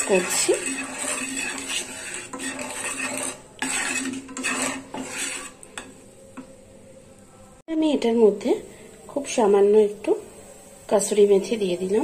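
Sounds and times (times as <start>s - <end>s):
wooden spatula scraping frying pan: 0.0s - 6.0s.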